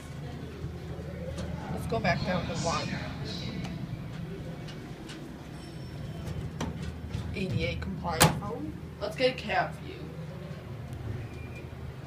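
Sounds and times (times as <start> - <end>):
elevator hum: 0.0 - 12.0.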